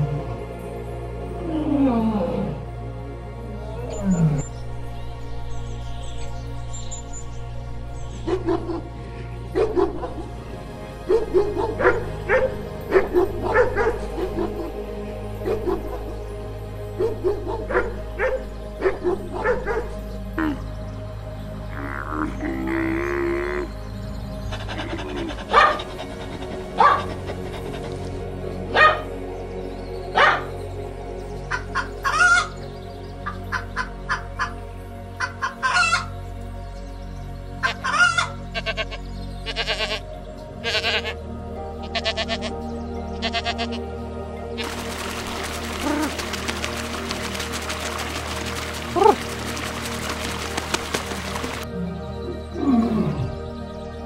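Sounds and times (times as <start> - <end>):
cheerful background music: 0.0 - 54.0
sharp animal calls: 24.4 - 28.0.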